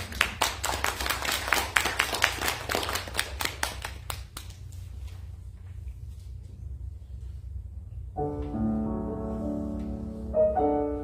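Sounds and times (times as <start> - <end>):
audience applauding: 0.0 - 4.6
low room hum: 0.0 - 11.0.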